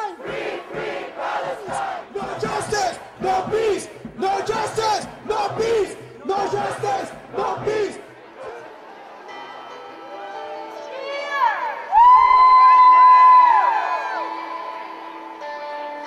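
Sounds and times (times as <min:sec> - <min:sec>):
crowd chanting in unison: 0:00.0 - 0:10.0.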